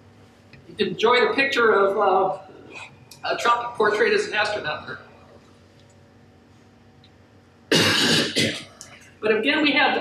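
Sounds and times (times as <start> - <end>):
woman clearing her throat: 7.7 - 8.8.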